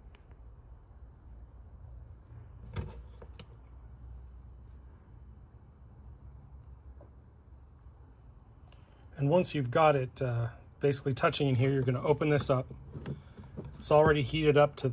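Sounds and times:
steady low hum: 0:00.0 - 0:14.9
quiet handling noise: 0:02.5 - 0:03.8, 0:11.3 - 0:14.9.

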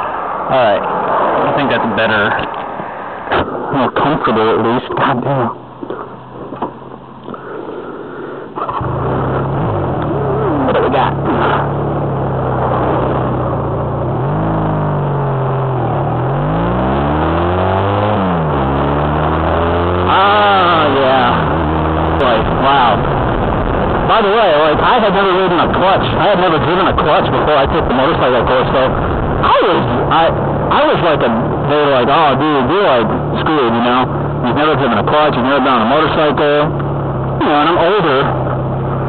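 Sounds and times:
motorcycle engine revving: 0:08.6 - 0:39.0.

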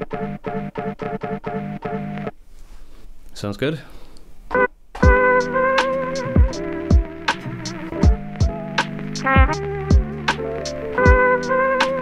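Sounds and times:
sampled chord chops: 0:04.6 - 0:12.0
kick drums and hi-hats: 0:05.0 - 0:12.0
lofi hip-hop beat: 0:05.0 - 0:12.0.

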